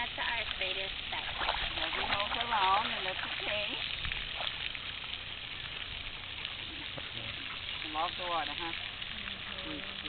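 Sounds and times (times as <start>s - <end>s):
water sloshing as dog swims: 0.9s - 10.0s.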